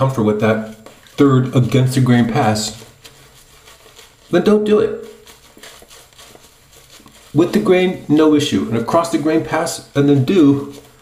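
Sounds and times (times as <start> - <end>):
shaving brush swishing on face: 0.0 - 11.0.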